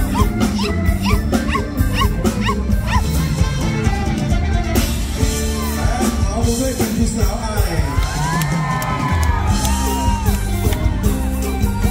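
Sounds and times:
yelping bent lead notes: 0:00.0 - 0:06.6
live band playing: 0:00.0 - 0:11.9.

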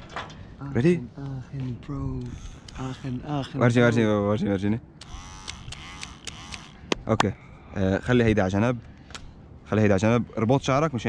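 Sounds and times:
electric hair clipper buzzing: 0:02.2 - 0:03.7, 0:05.0 - 0:07.0.

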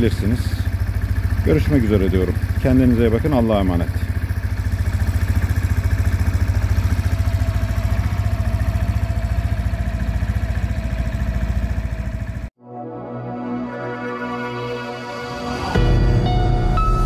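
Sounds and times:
scooter engine idling: 0:00.0 - 0:12.5
music: 0:12.6 - 0:17.0.

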